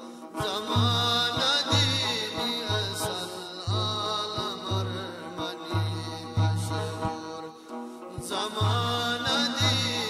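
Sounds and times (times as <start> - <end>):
chanted vocal line: 0.0 - 10.0.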